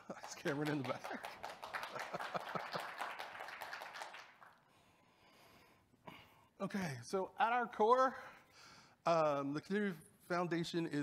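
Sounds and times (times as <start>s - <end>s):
audience applauding: 0.0s - 4.6s.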